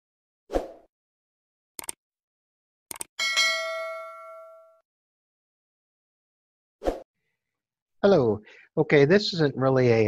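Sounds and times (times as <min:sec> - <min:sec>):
quick clicks: 0:01.8 - 0:02.0, 0:02.9 - 0:03.1
bright bell chime: 0:03.2 - 0:04.8.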